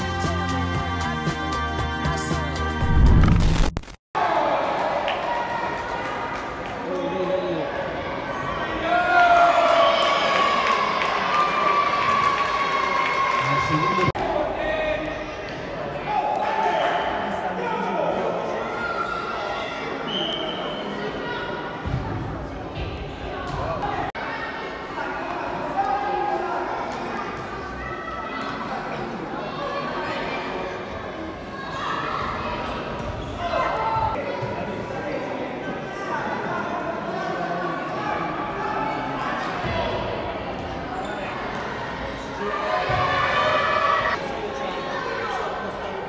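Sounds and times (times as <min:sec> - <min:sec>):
echoing indoor hall hubbub: 0:04.2 - 0:46.0.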